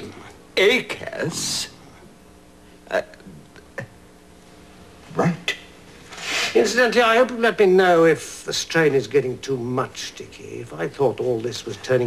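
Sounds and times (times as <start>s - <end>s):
man saying uh: 0.0s - 1.8s.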